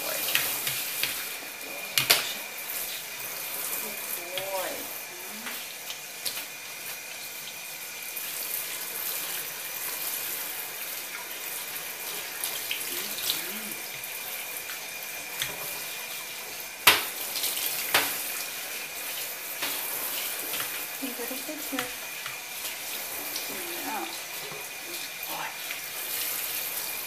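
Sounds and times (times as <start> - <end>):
shower head water spraying: 0.0 - 27.0.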